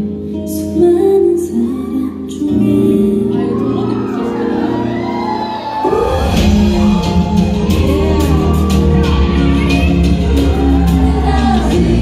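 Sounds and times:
fans shouting and cheering: 2.9 - 12.0
loud pop music over sound system: 3.5 - 12.0
heavy bass and drum beat: 6.0 - 12.0.

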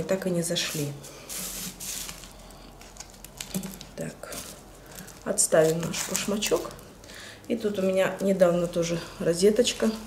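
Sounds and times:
hissy rustles of potting mix: 0.5 - 6.8.

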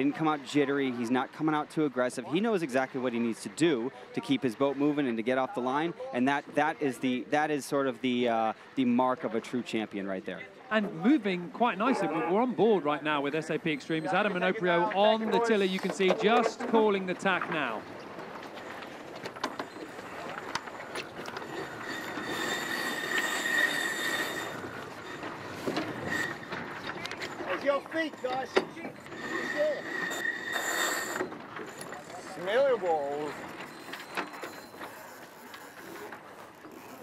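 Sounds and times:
high-pitched squealing whine: 19.4 - 34.7
crew shouting: 21.4 - 33.8.

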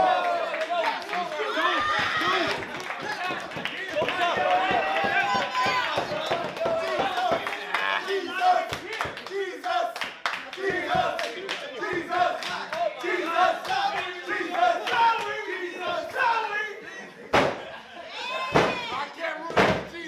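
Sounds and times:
crowd shouting and yelling: 0.0 - 20.0.

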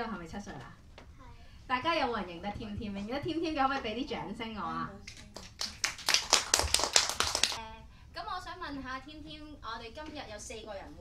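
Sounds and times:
small group clapping: 5.0 - 7.6.

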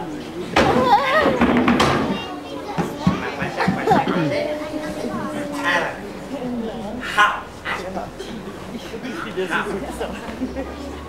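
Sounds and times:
voices in a large hall: 0.0 - 11.0
sharp knock: 0.6 - 2.2
high voice wavering: 4.0 - 6.7.

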